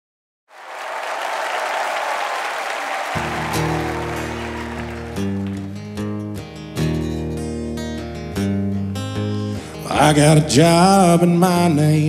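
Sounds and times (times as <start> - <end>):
audience applause: 0.5 - 6.0.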